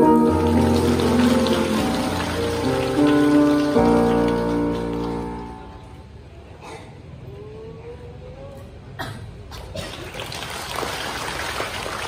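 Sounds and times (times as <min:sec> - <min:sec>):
electronic keyboard chords: 0:00.0 - 0:06.0.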